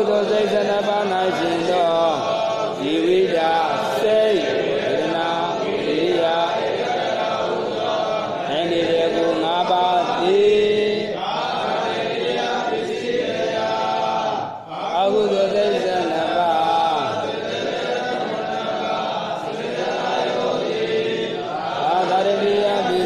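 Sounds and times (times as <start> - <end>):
man chanting: 0.0 - 12.0, 12.7 - 23.0.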